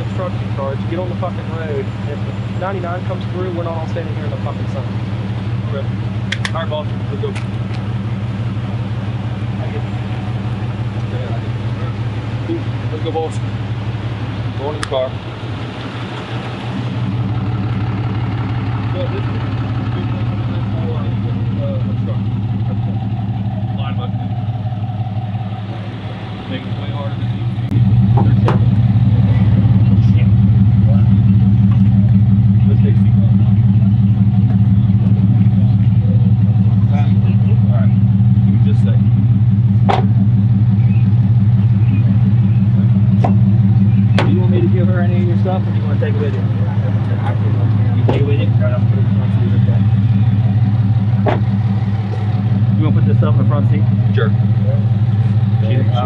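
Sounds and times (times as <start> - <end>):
car engine idling: 0.0 - 56.0
sharp knocks and clicks: 39.8 - 40.2, 51.2 - 51.5.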